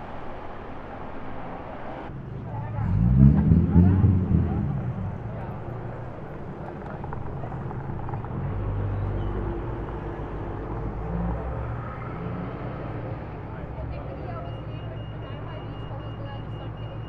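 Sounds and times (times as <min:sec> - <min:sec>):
car engine and tyre rumble: 0:00.0 - 0:17.0.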